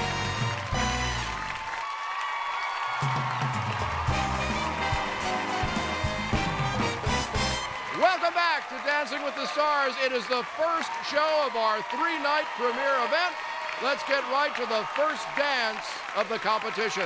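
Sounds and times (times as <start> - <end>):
television theme music: 0.0 - 1.8, 3.0 - 10.5
audience applause: 0.0 - 17.0.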